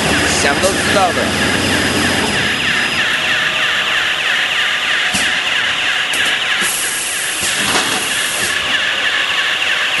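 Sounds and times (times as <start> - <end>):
machine running with mechanical noise: 0.0 - 10.0.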